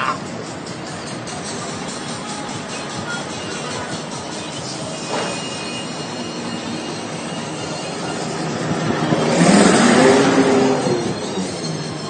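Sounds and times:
road traffic: 0:00.0 - 0:12.0
vehicle passing close by: 0:07.2 - 0:11.8.

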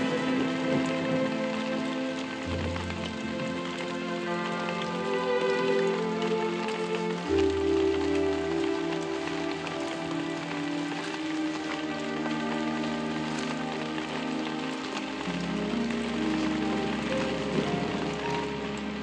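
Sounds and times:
slow film music chords: 0:00.0 - 0:19.0
steady rain falling: 0:00.0 - 0:19.0.

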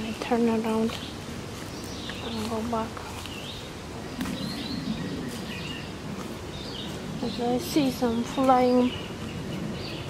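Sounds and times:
steady outdoor hiss: 0:00.0 - 0:10.0
wild birds chirping: 0:00.0 - 0:10.0.

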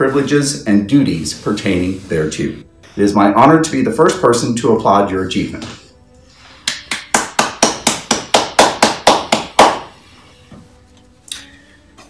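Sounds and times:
person clapping hands: 0:06.6 - 0:09.9.

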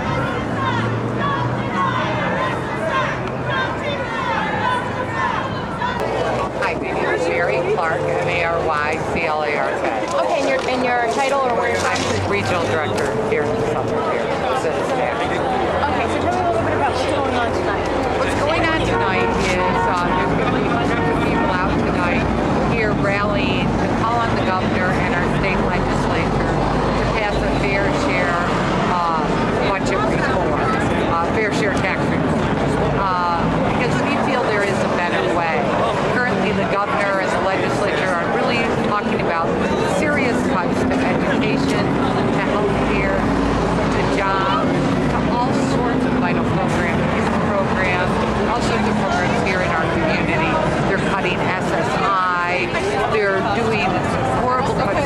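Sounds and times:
vehicle engine rumble: 0:00.0 - 0:55.0
woman speaking: 0:06.0 - 0:17.2, 0:18.2 - 0:32.4, 0:33.0 - 0:55.0
woman talking: 0:06.0 - 0:17.2, 0:18.2 - 0:32.4, 0:33.0 - 0:55.0.

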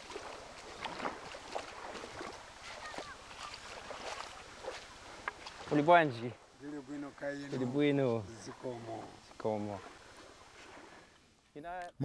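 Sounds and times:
small waves lapping on sand: 0:00.0 - 0:11.9.

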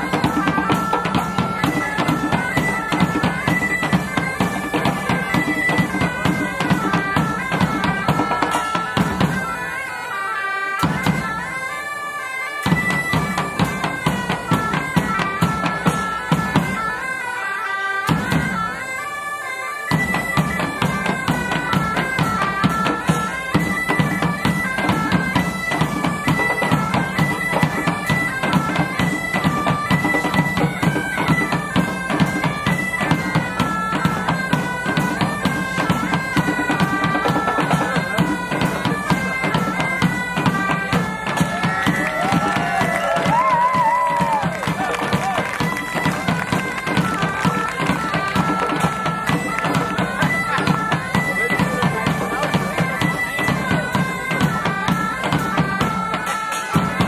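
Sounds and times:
bagpipe melody over drone: 0:00.0 - 0:43.8, 0:44.4 - 0:57.0.

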